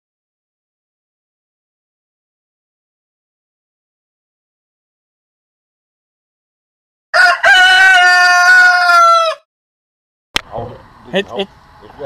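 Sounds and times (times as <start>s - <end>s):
rooster crowing: 7.1s - 9.5s.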